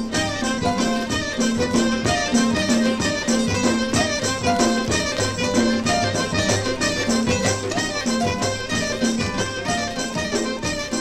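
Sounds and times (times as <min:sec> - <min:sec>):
folk dance music with drum beat: 0:00.0 - 0:11.0.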